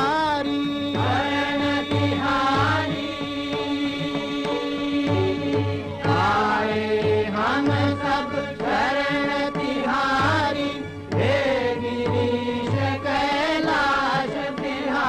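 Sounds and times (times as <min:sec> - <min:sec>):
devotional chant singing: 0:00.0 - 0:15.0.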